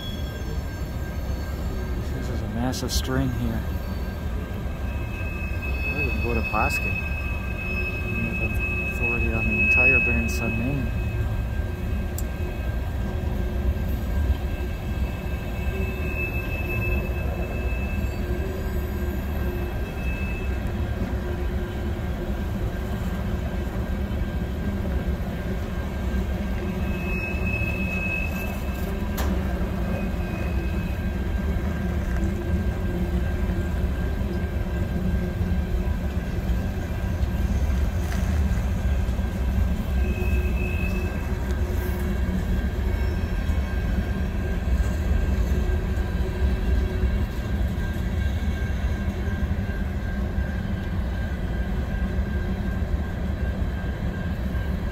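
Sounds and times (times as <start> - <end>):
faint high wheel squeals: 0.0 - 54.9
freight train wheels rumbling: 0.0 - 54.9.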